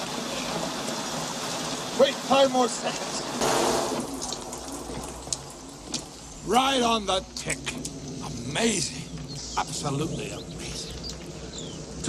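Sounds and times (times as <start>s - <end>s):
heavy rain pouring: 0.0s - 12.0s
water drips: 0.0s - 12.0s.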